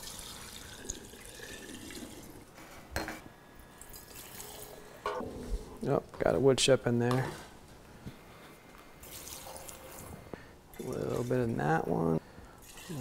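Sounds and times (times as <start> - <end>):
liquid pouring into a glass jar: 0.0 - 2.4, 3.8 - 4.8, 9.0 - 10.1, 12.6 - 13.0.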